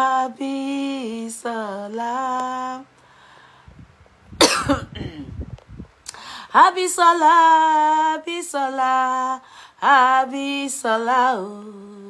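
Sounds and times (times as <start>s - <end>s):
woman coughing: 4.4s - 5.3s.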